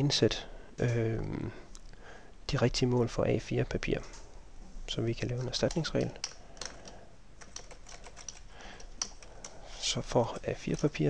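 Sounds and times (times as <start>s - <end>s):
computer keyboard typing: 5.1s - 11.0s.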